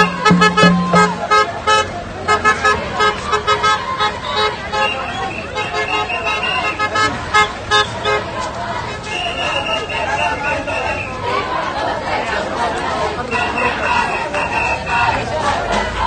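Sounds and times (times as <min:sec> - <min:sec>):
vehicle horns honking: 0:00.0 - 0:08.3
marching crowd: 0:00.0 - 0:16.0.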